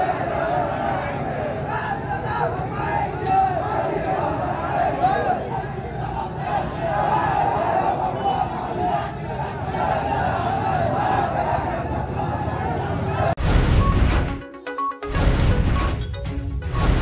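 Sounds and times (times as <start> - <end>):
crowd shouting: 0.0 - 13.4.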